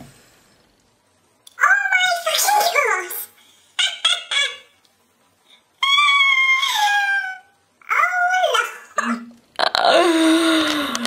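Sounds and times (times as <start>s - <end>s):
woman squealing: 5.8s - 7.4s.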